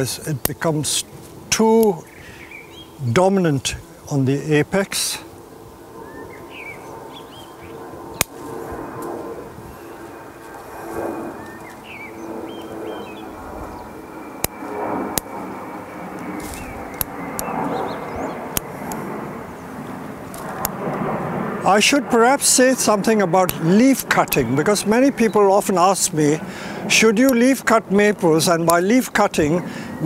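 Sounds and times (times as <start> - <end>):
scissors snipping: 16.4 - 17.5.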